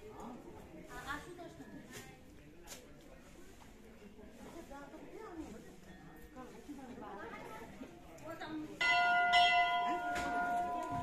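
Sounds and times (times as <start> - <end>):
temple bell ringing: 8.8 - 11.0.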